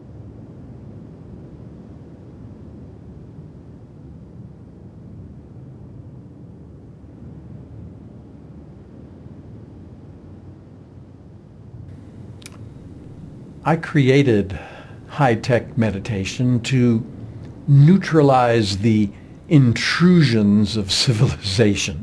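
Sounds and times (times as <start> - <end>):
low rumbling noise: 11.9 - 22.0.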